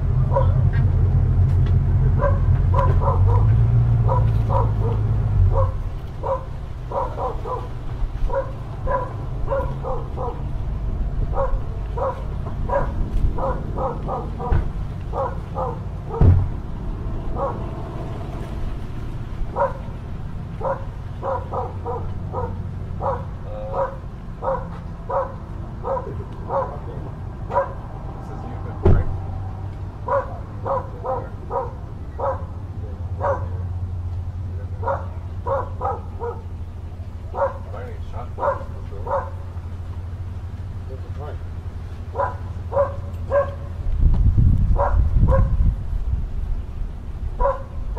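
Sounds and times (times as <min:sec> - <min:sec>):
dog barking: 0:00.3 - 0:00.6, 0:02.1 - 0:10.5, 0:11.3 - 0:16.4, 0:17.4 - 0:17.7, 0:19.5 - 0:19.9, 0:20.6 - 0:27.8, 0:30.0 - 0:32.6, 0:33.2 - 0:33.7, 0:34.7 - 0:36.6, 0:37.3 - 0:39.5, 0:42.1 - 0:43.7, 0:44.8 - 0:45.6, 0:47.4 - 0:47.8
sharp thump: 0:16.2 - 0:16.7, 0:28.8 - 0:29.2.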